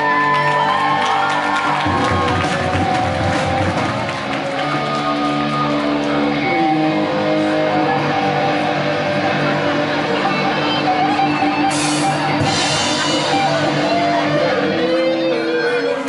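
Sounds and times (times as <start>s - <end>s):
electric guitars: 0.0s - 16.0s
drum kit with cymbals: 11.6s - 14.1s.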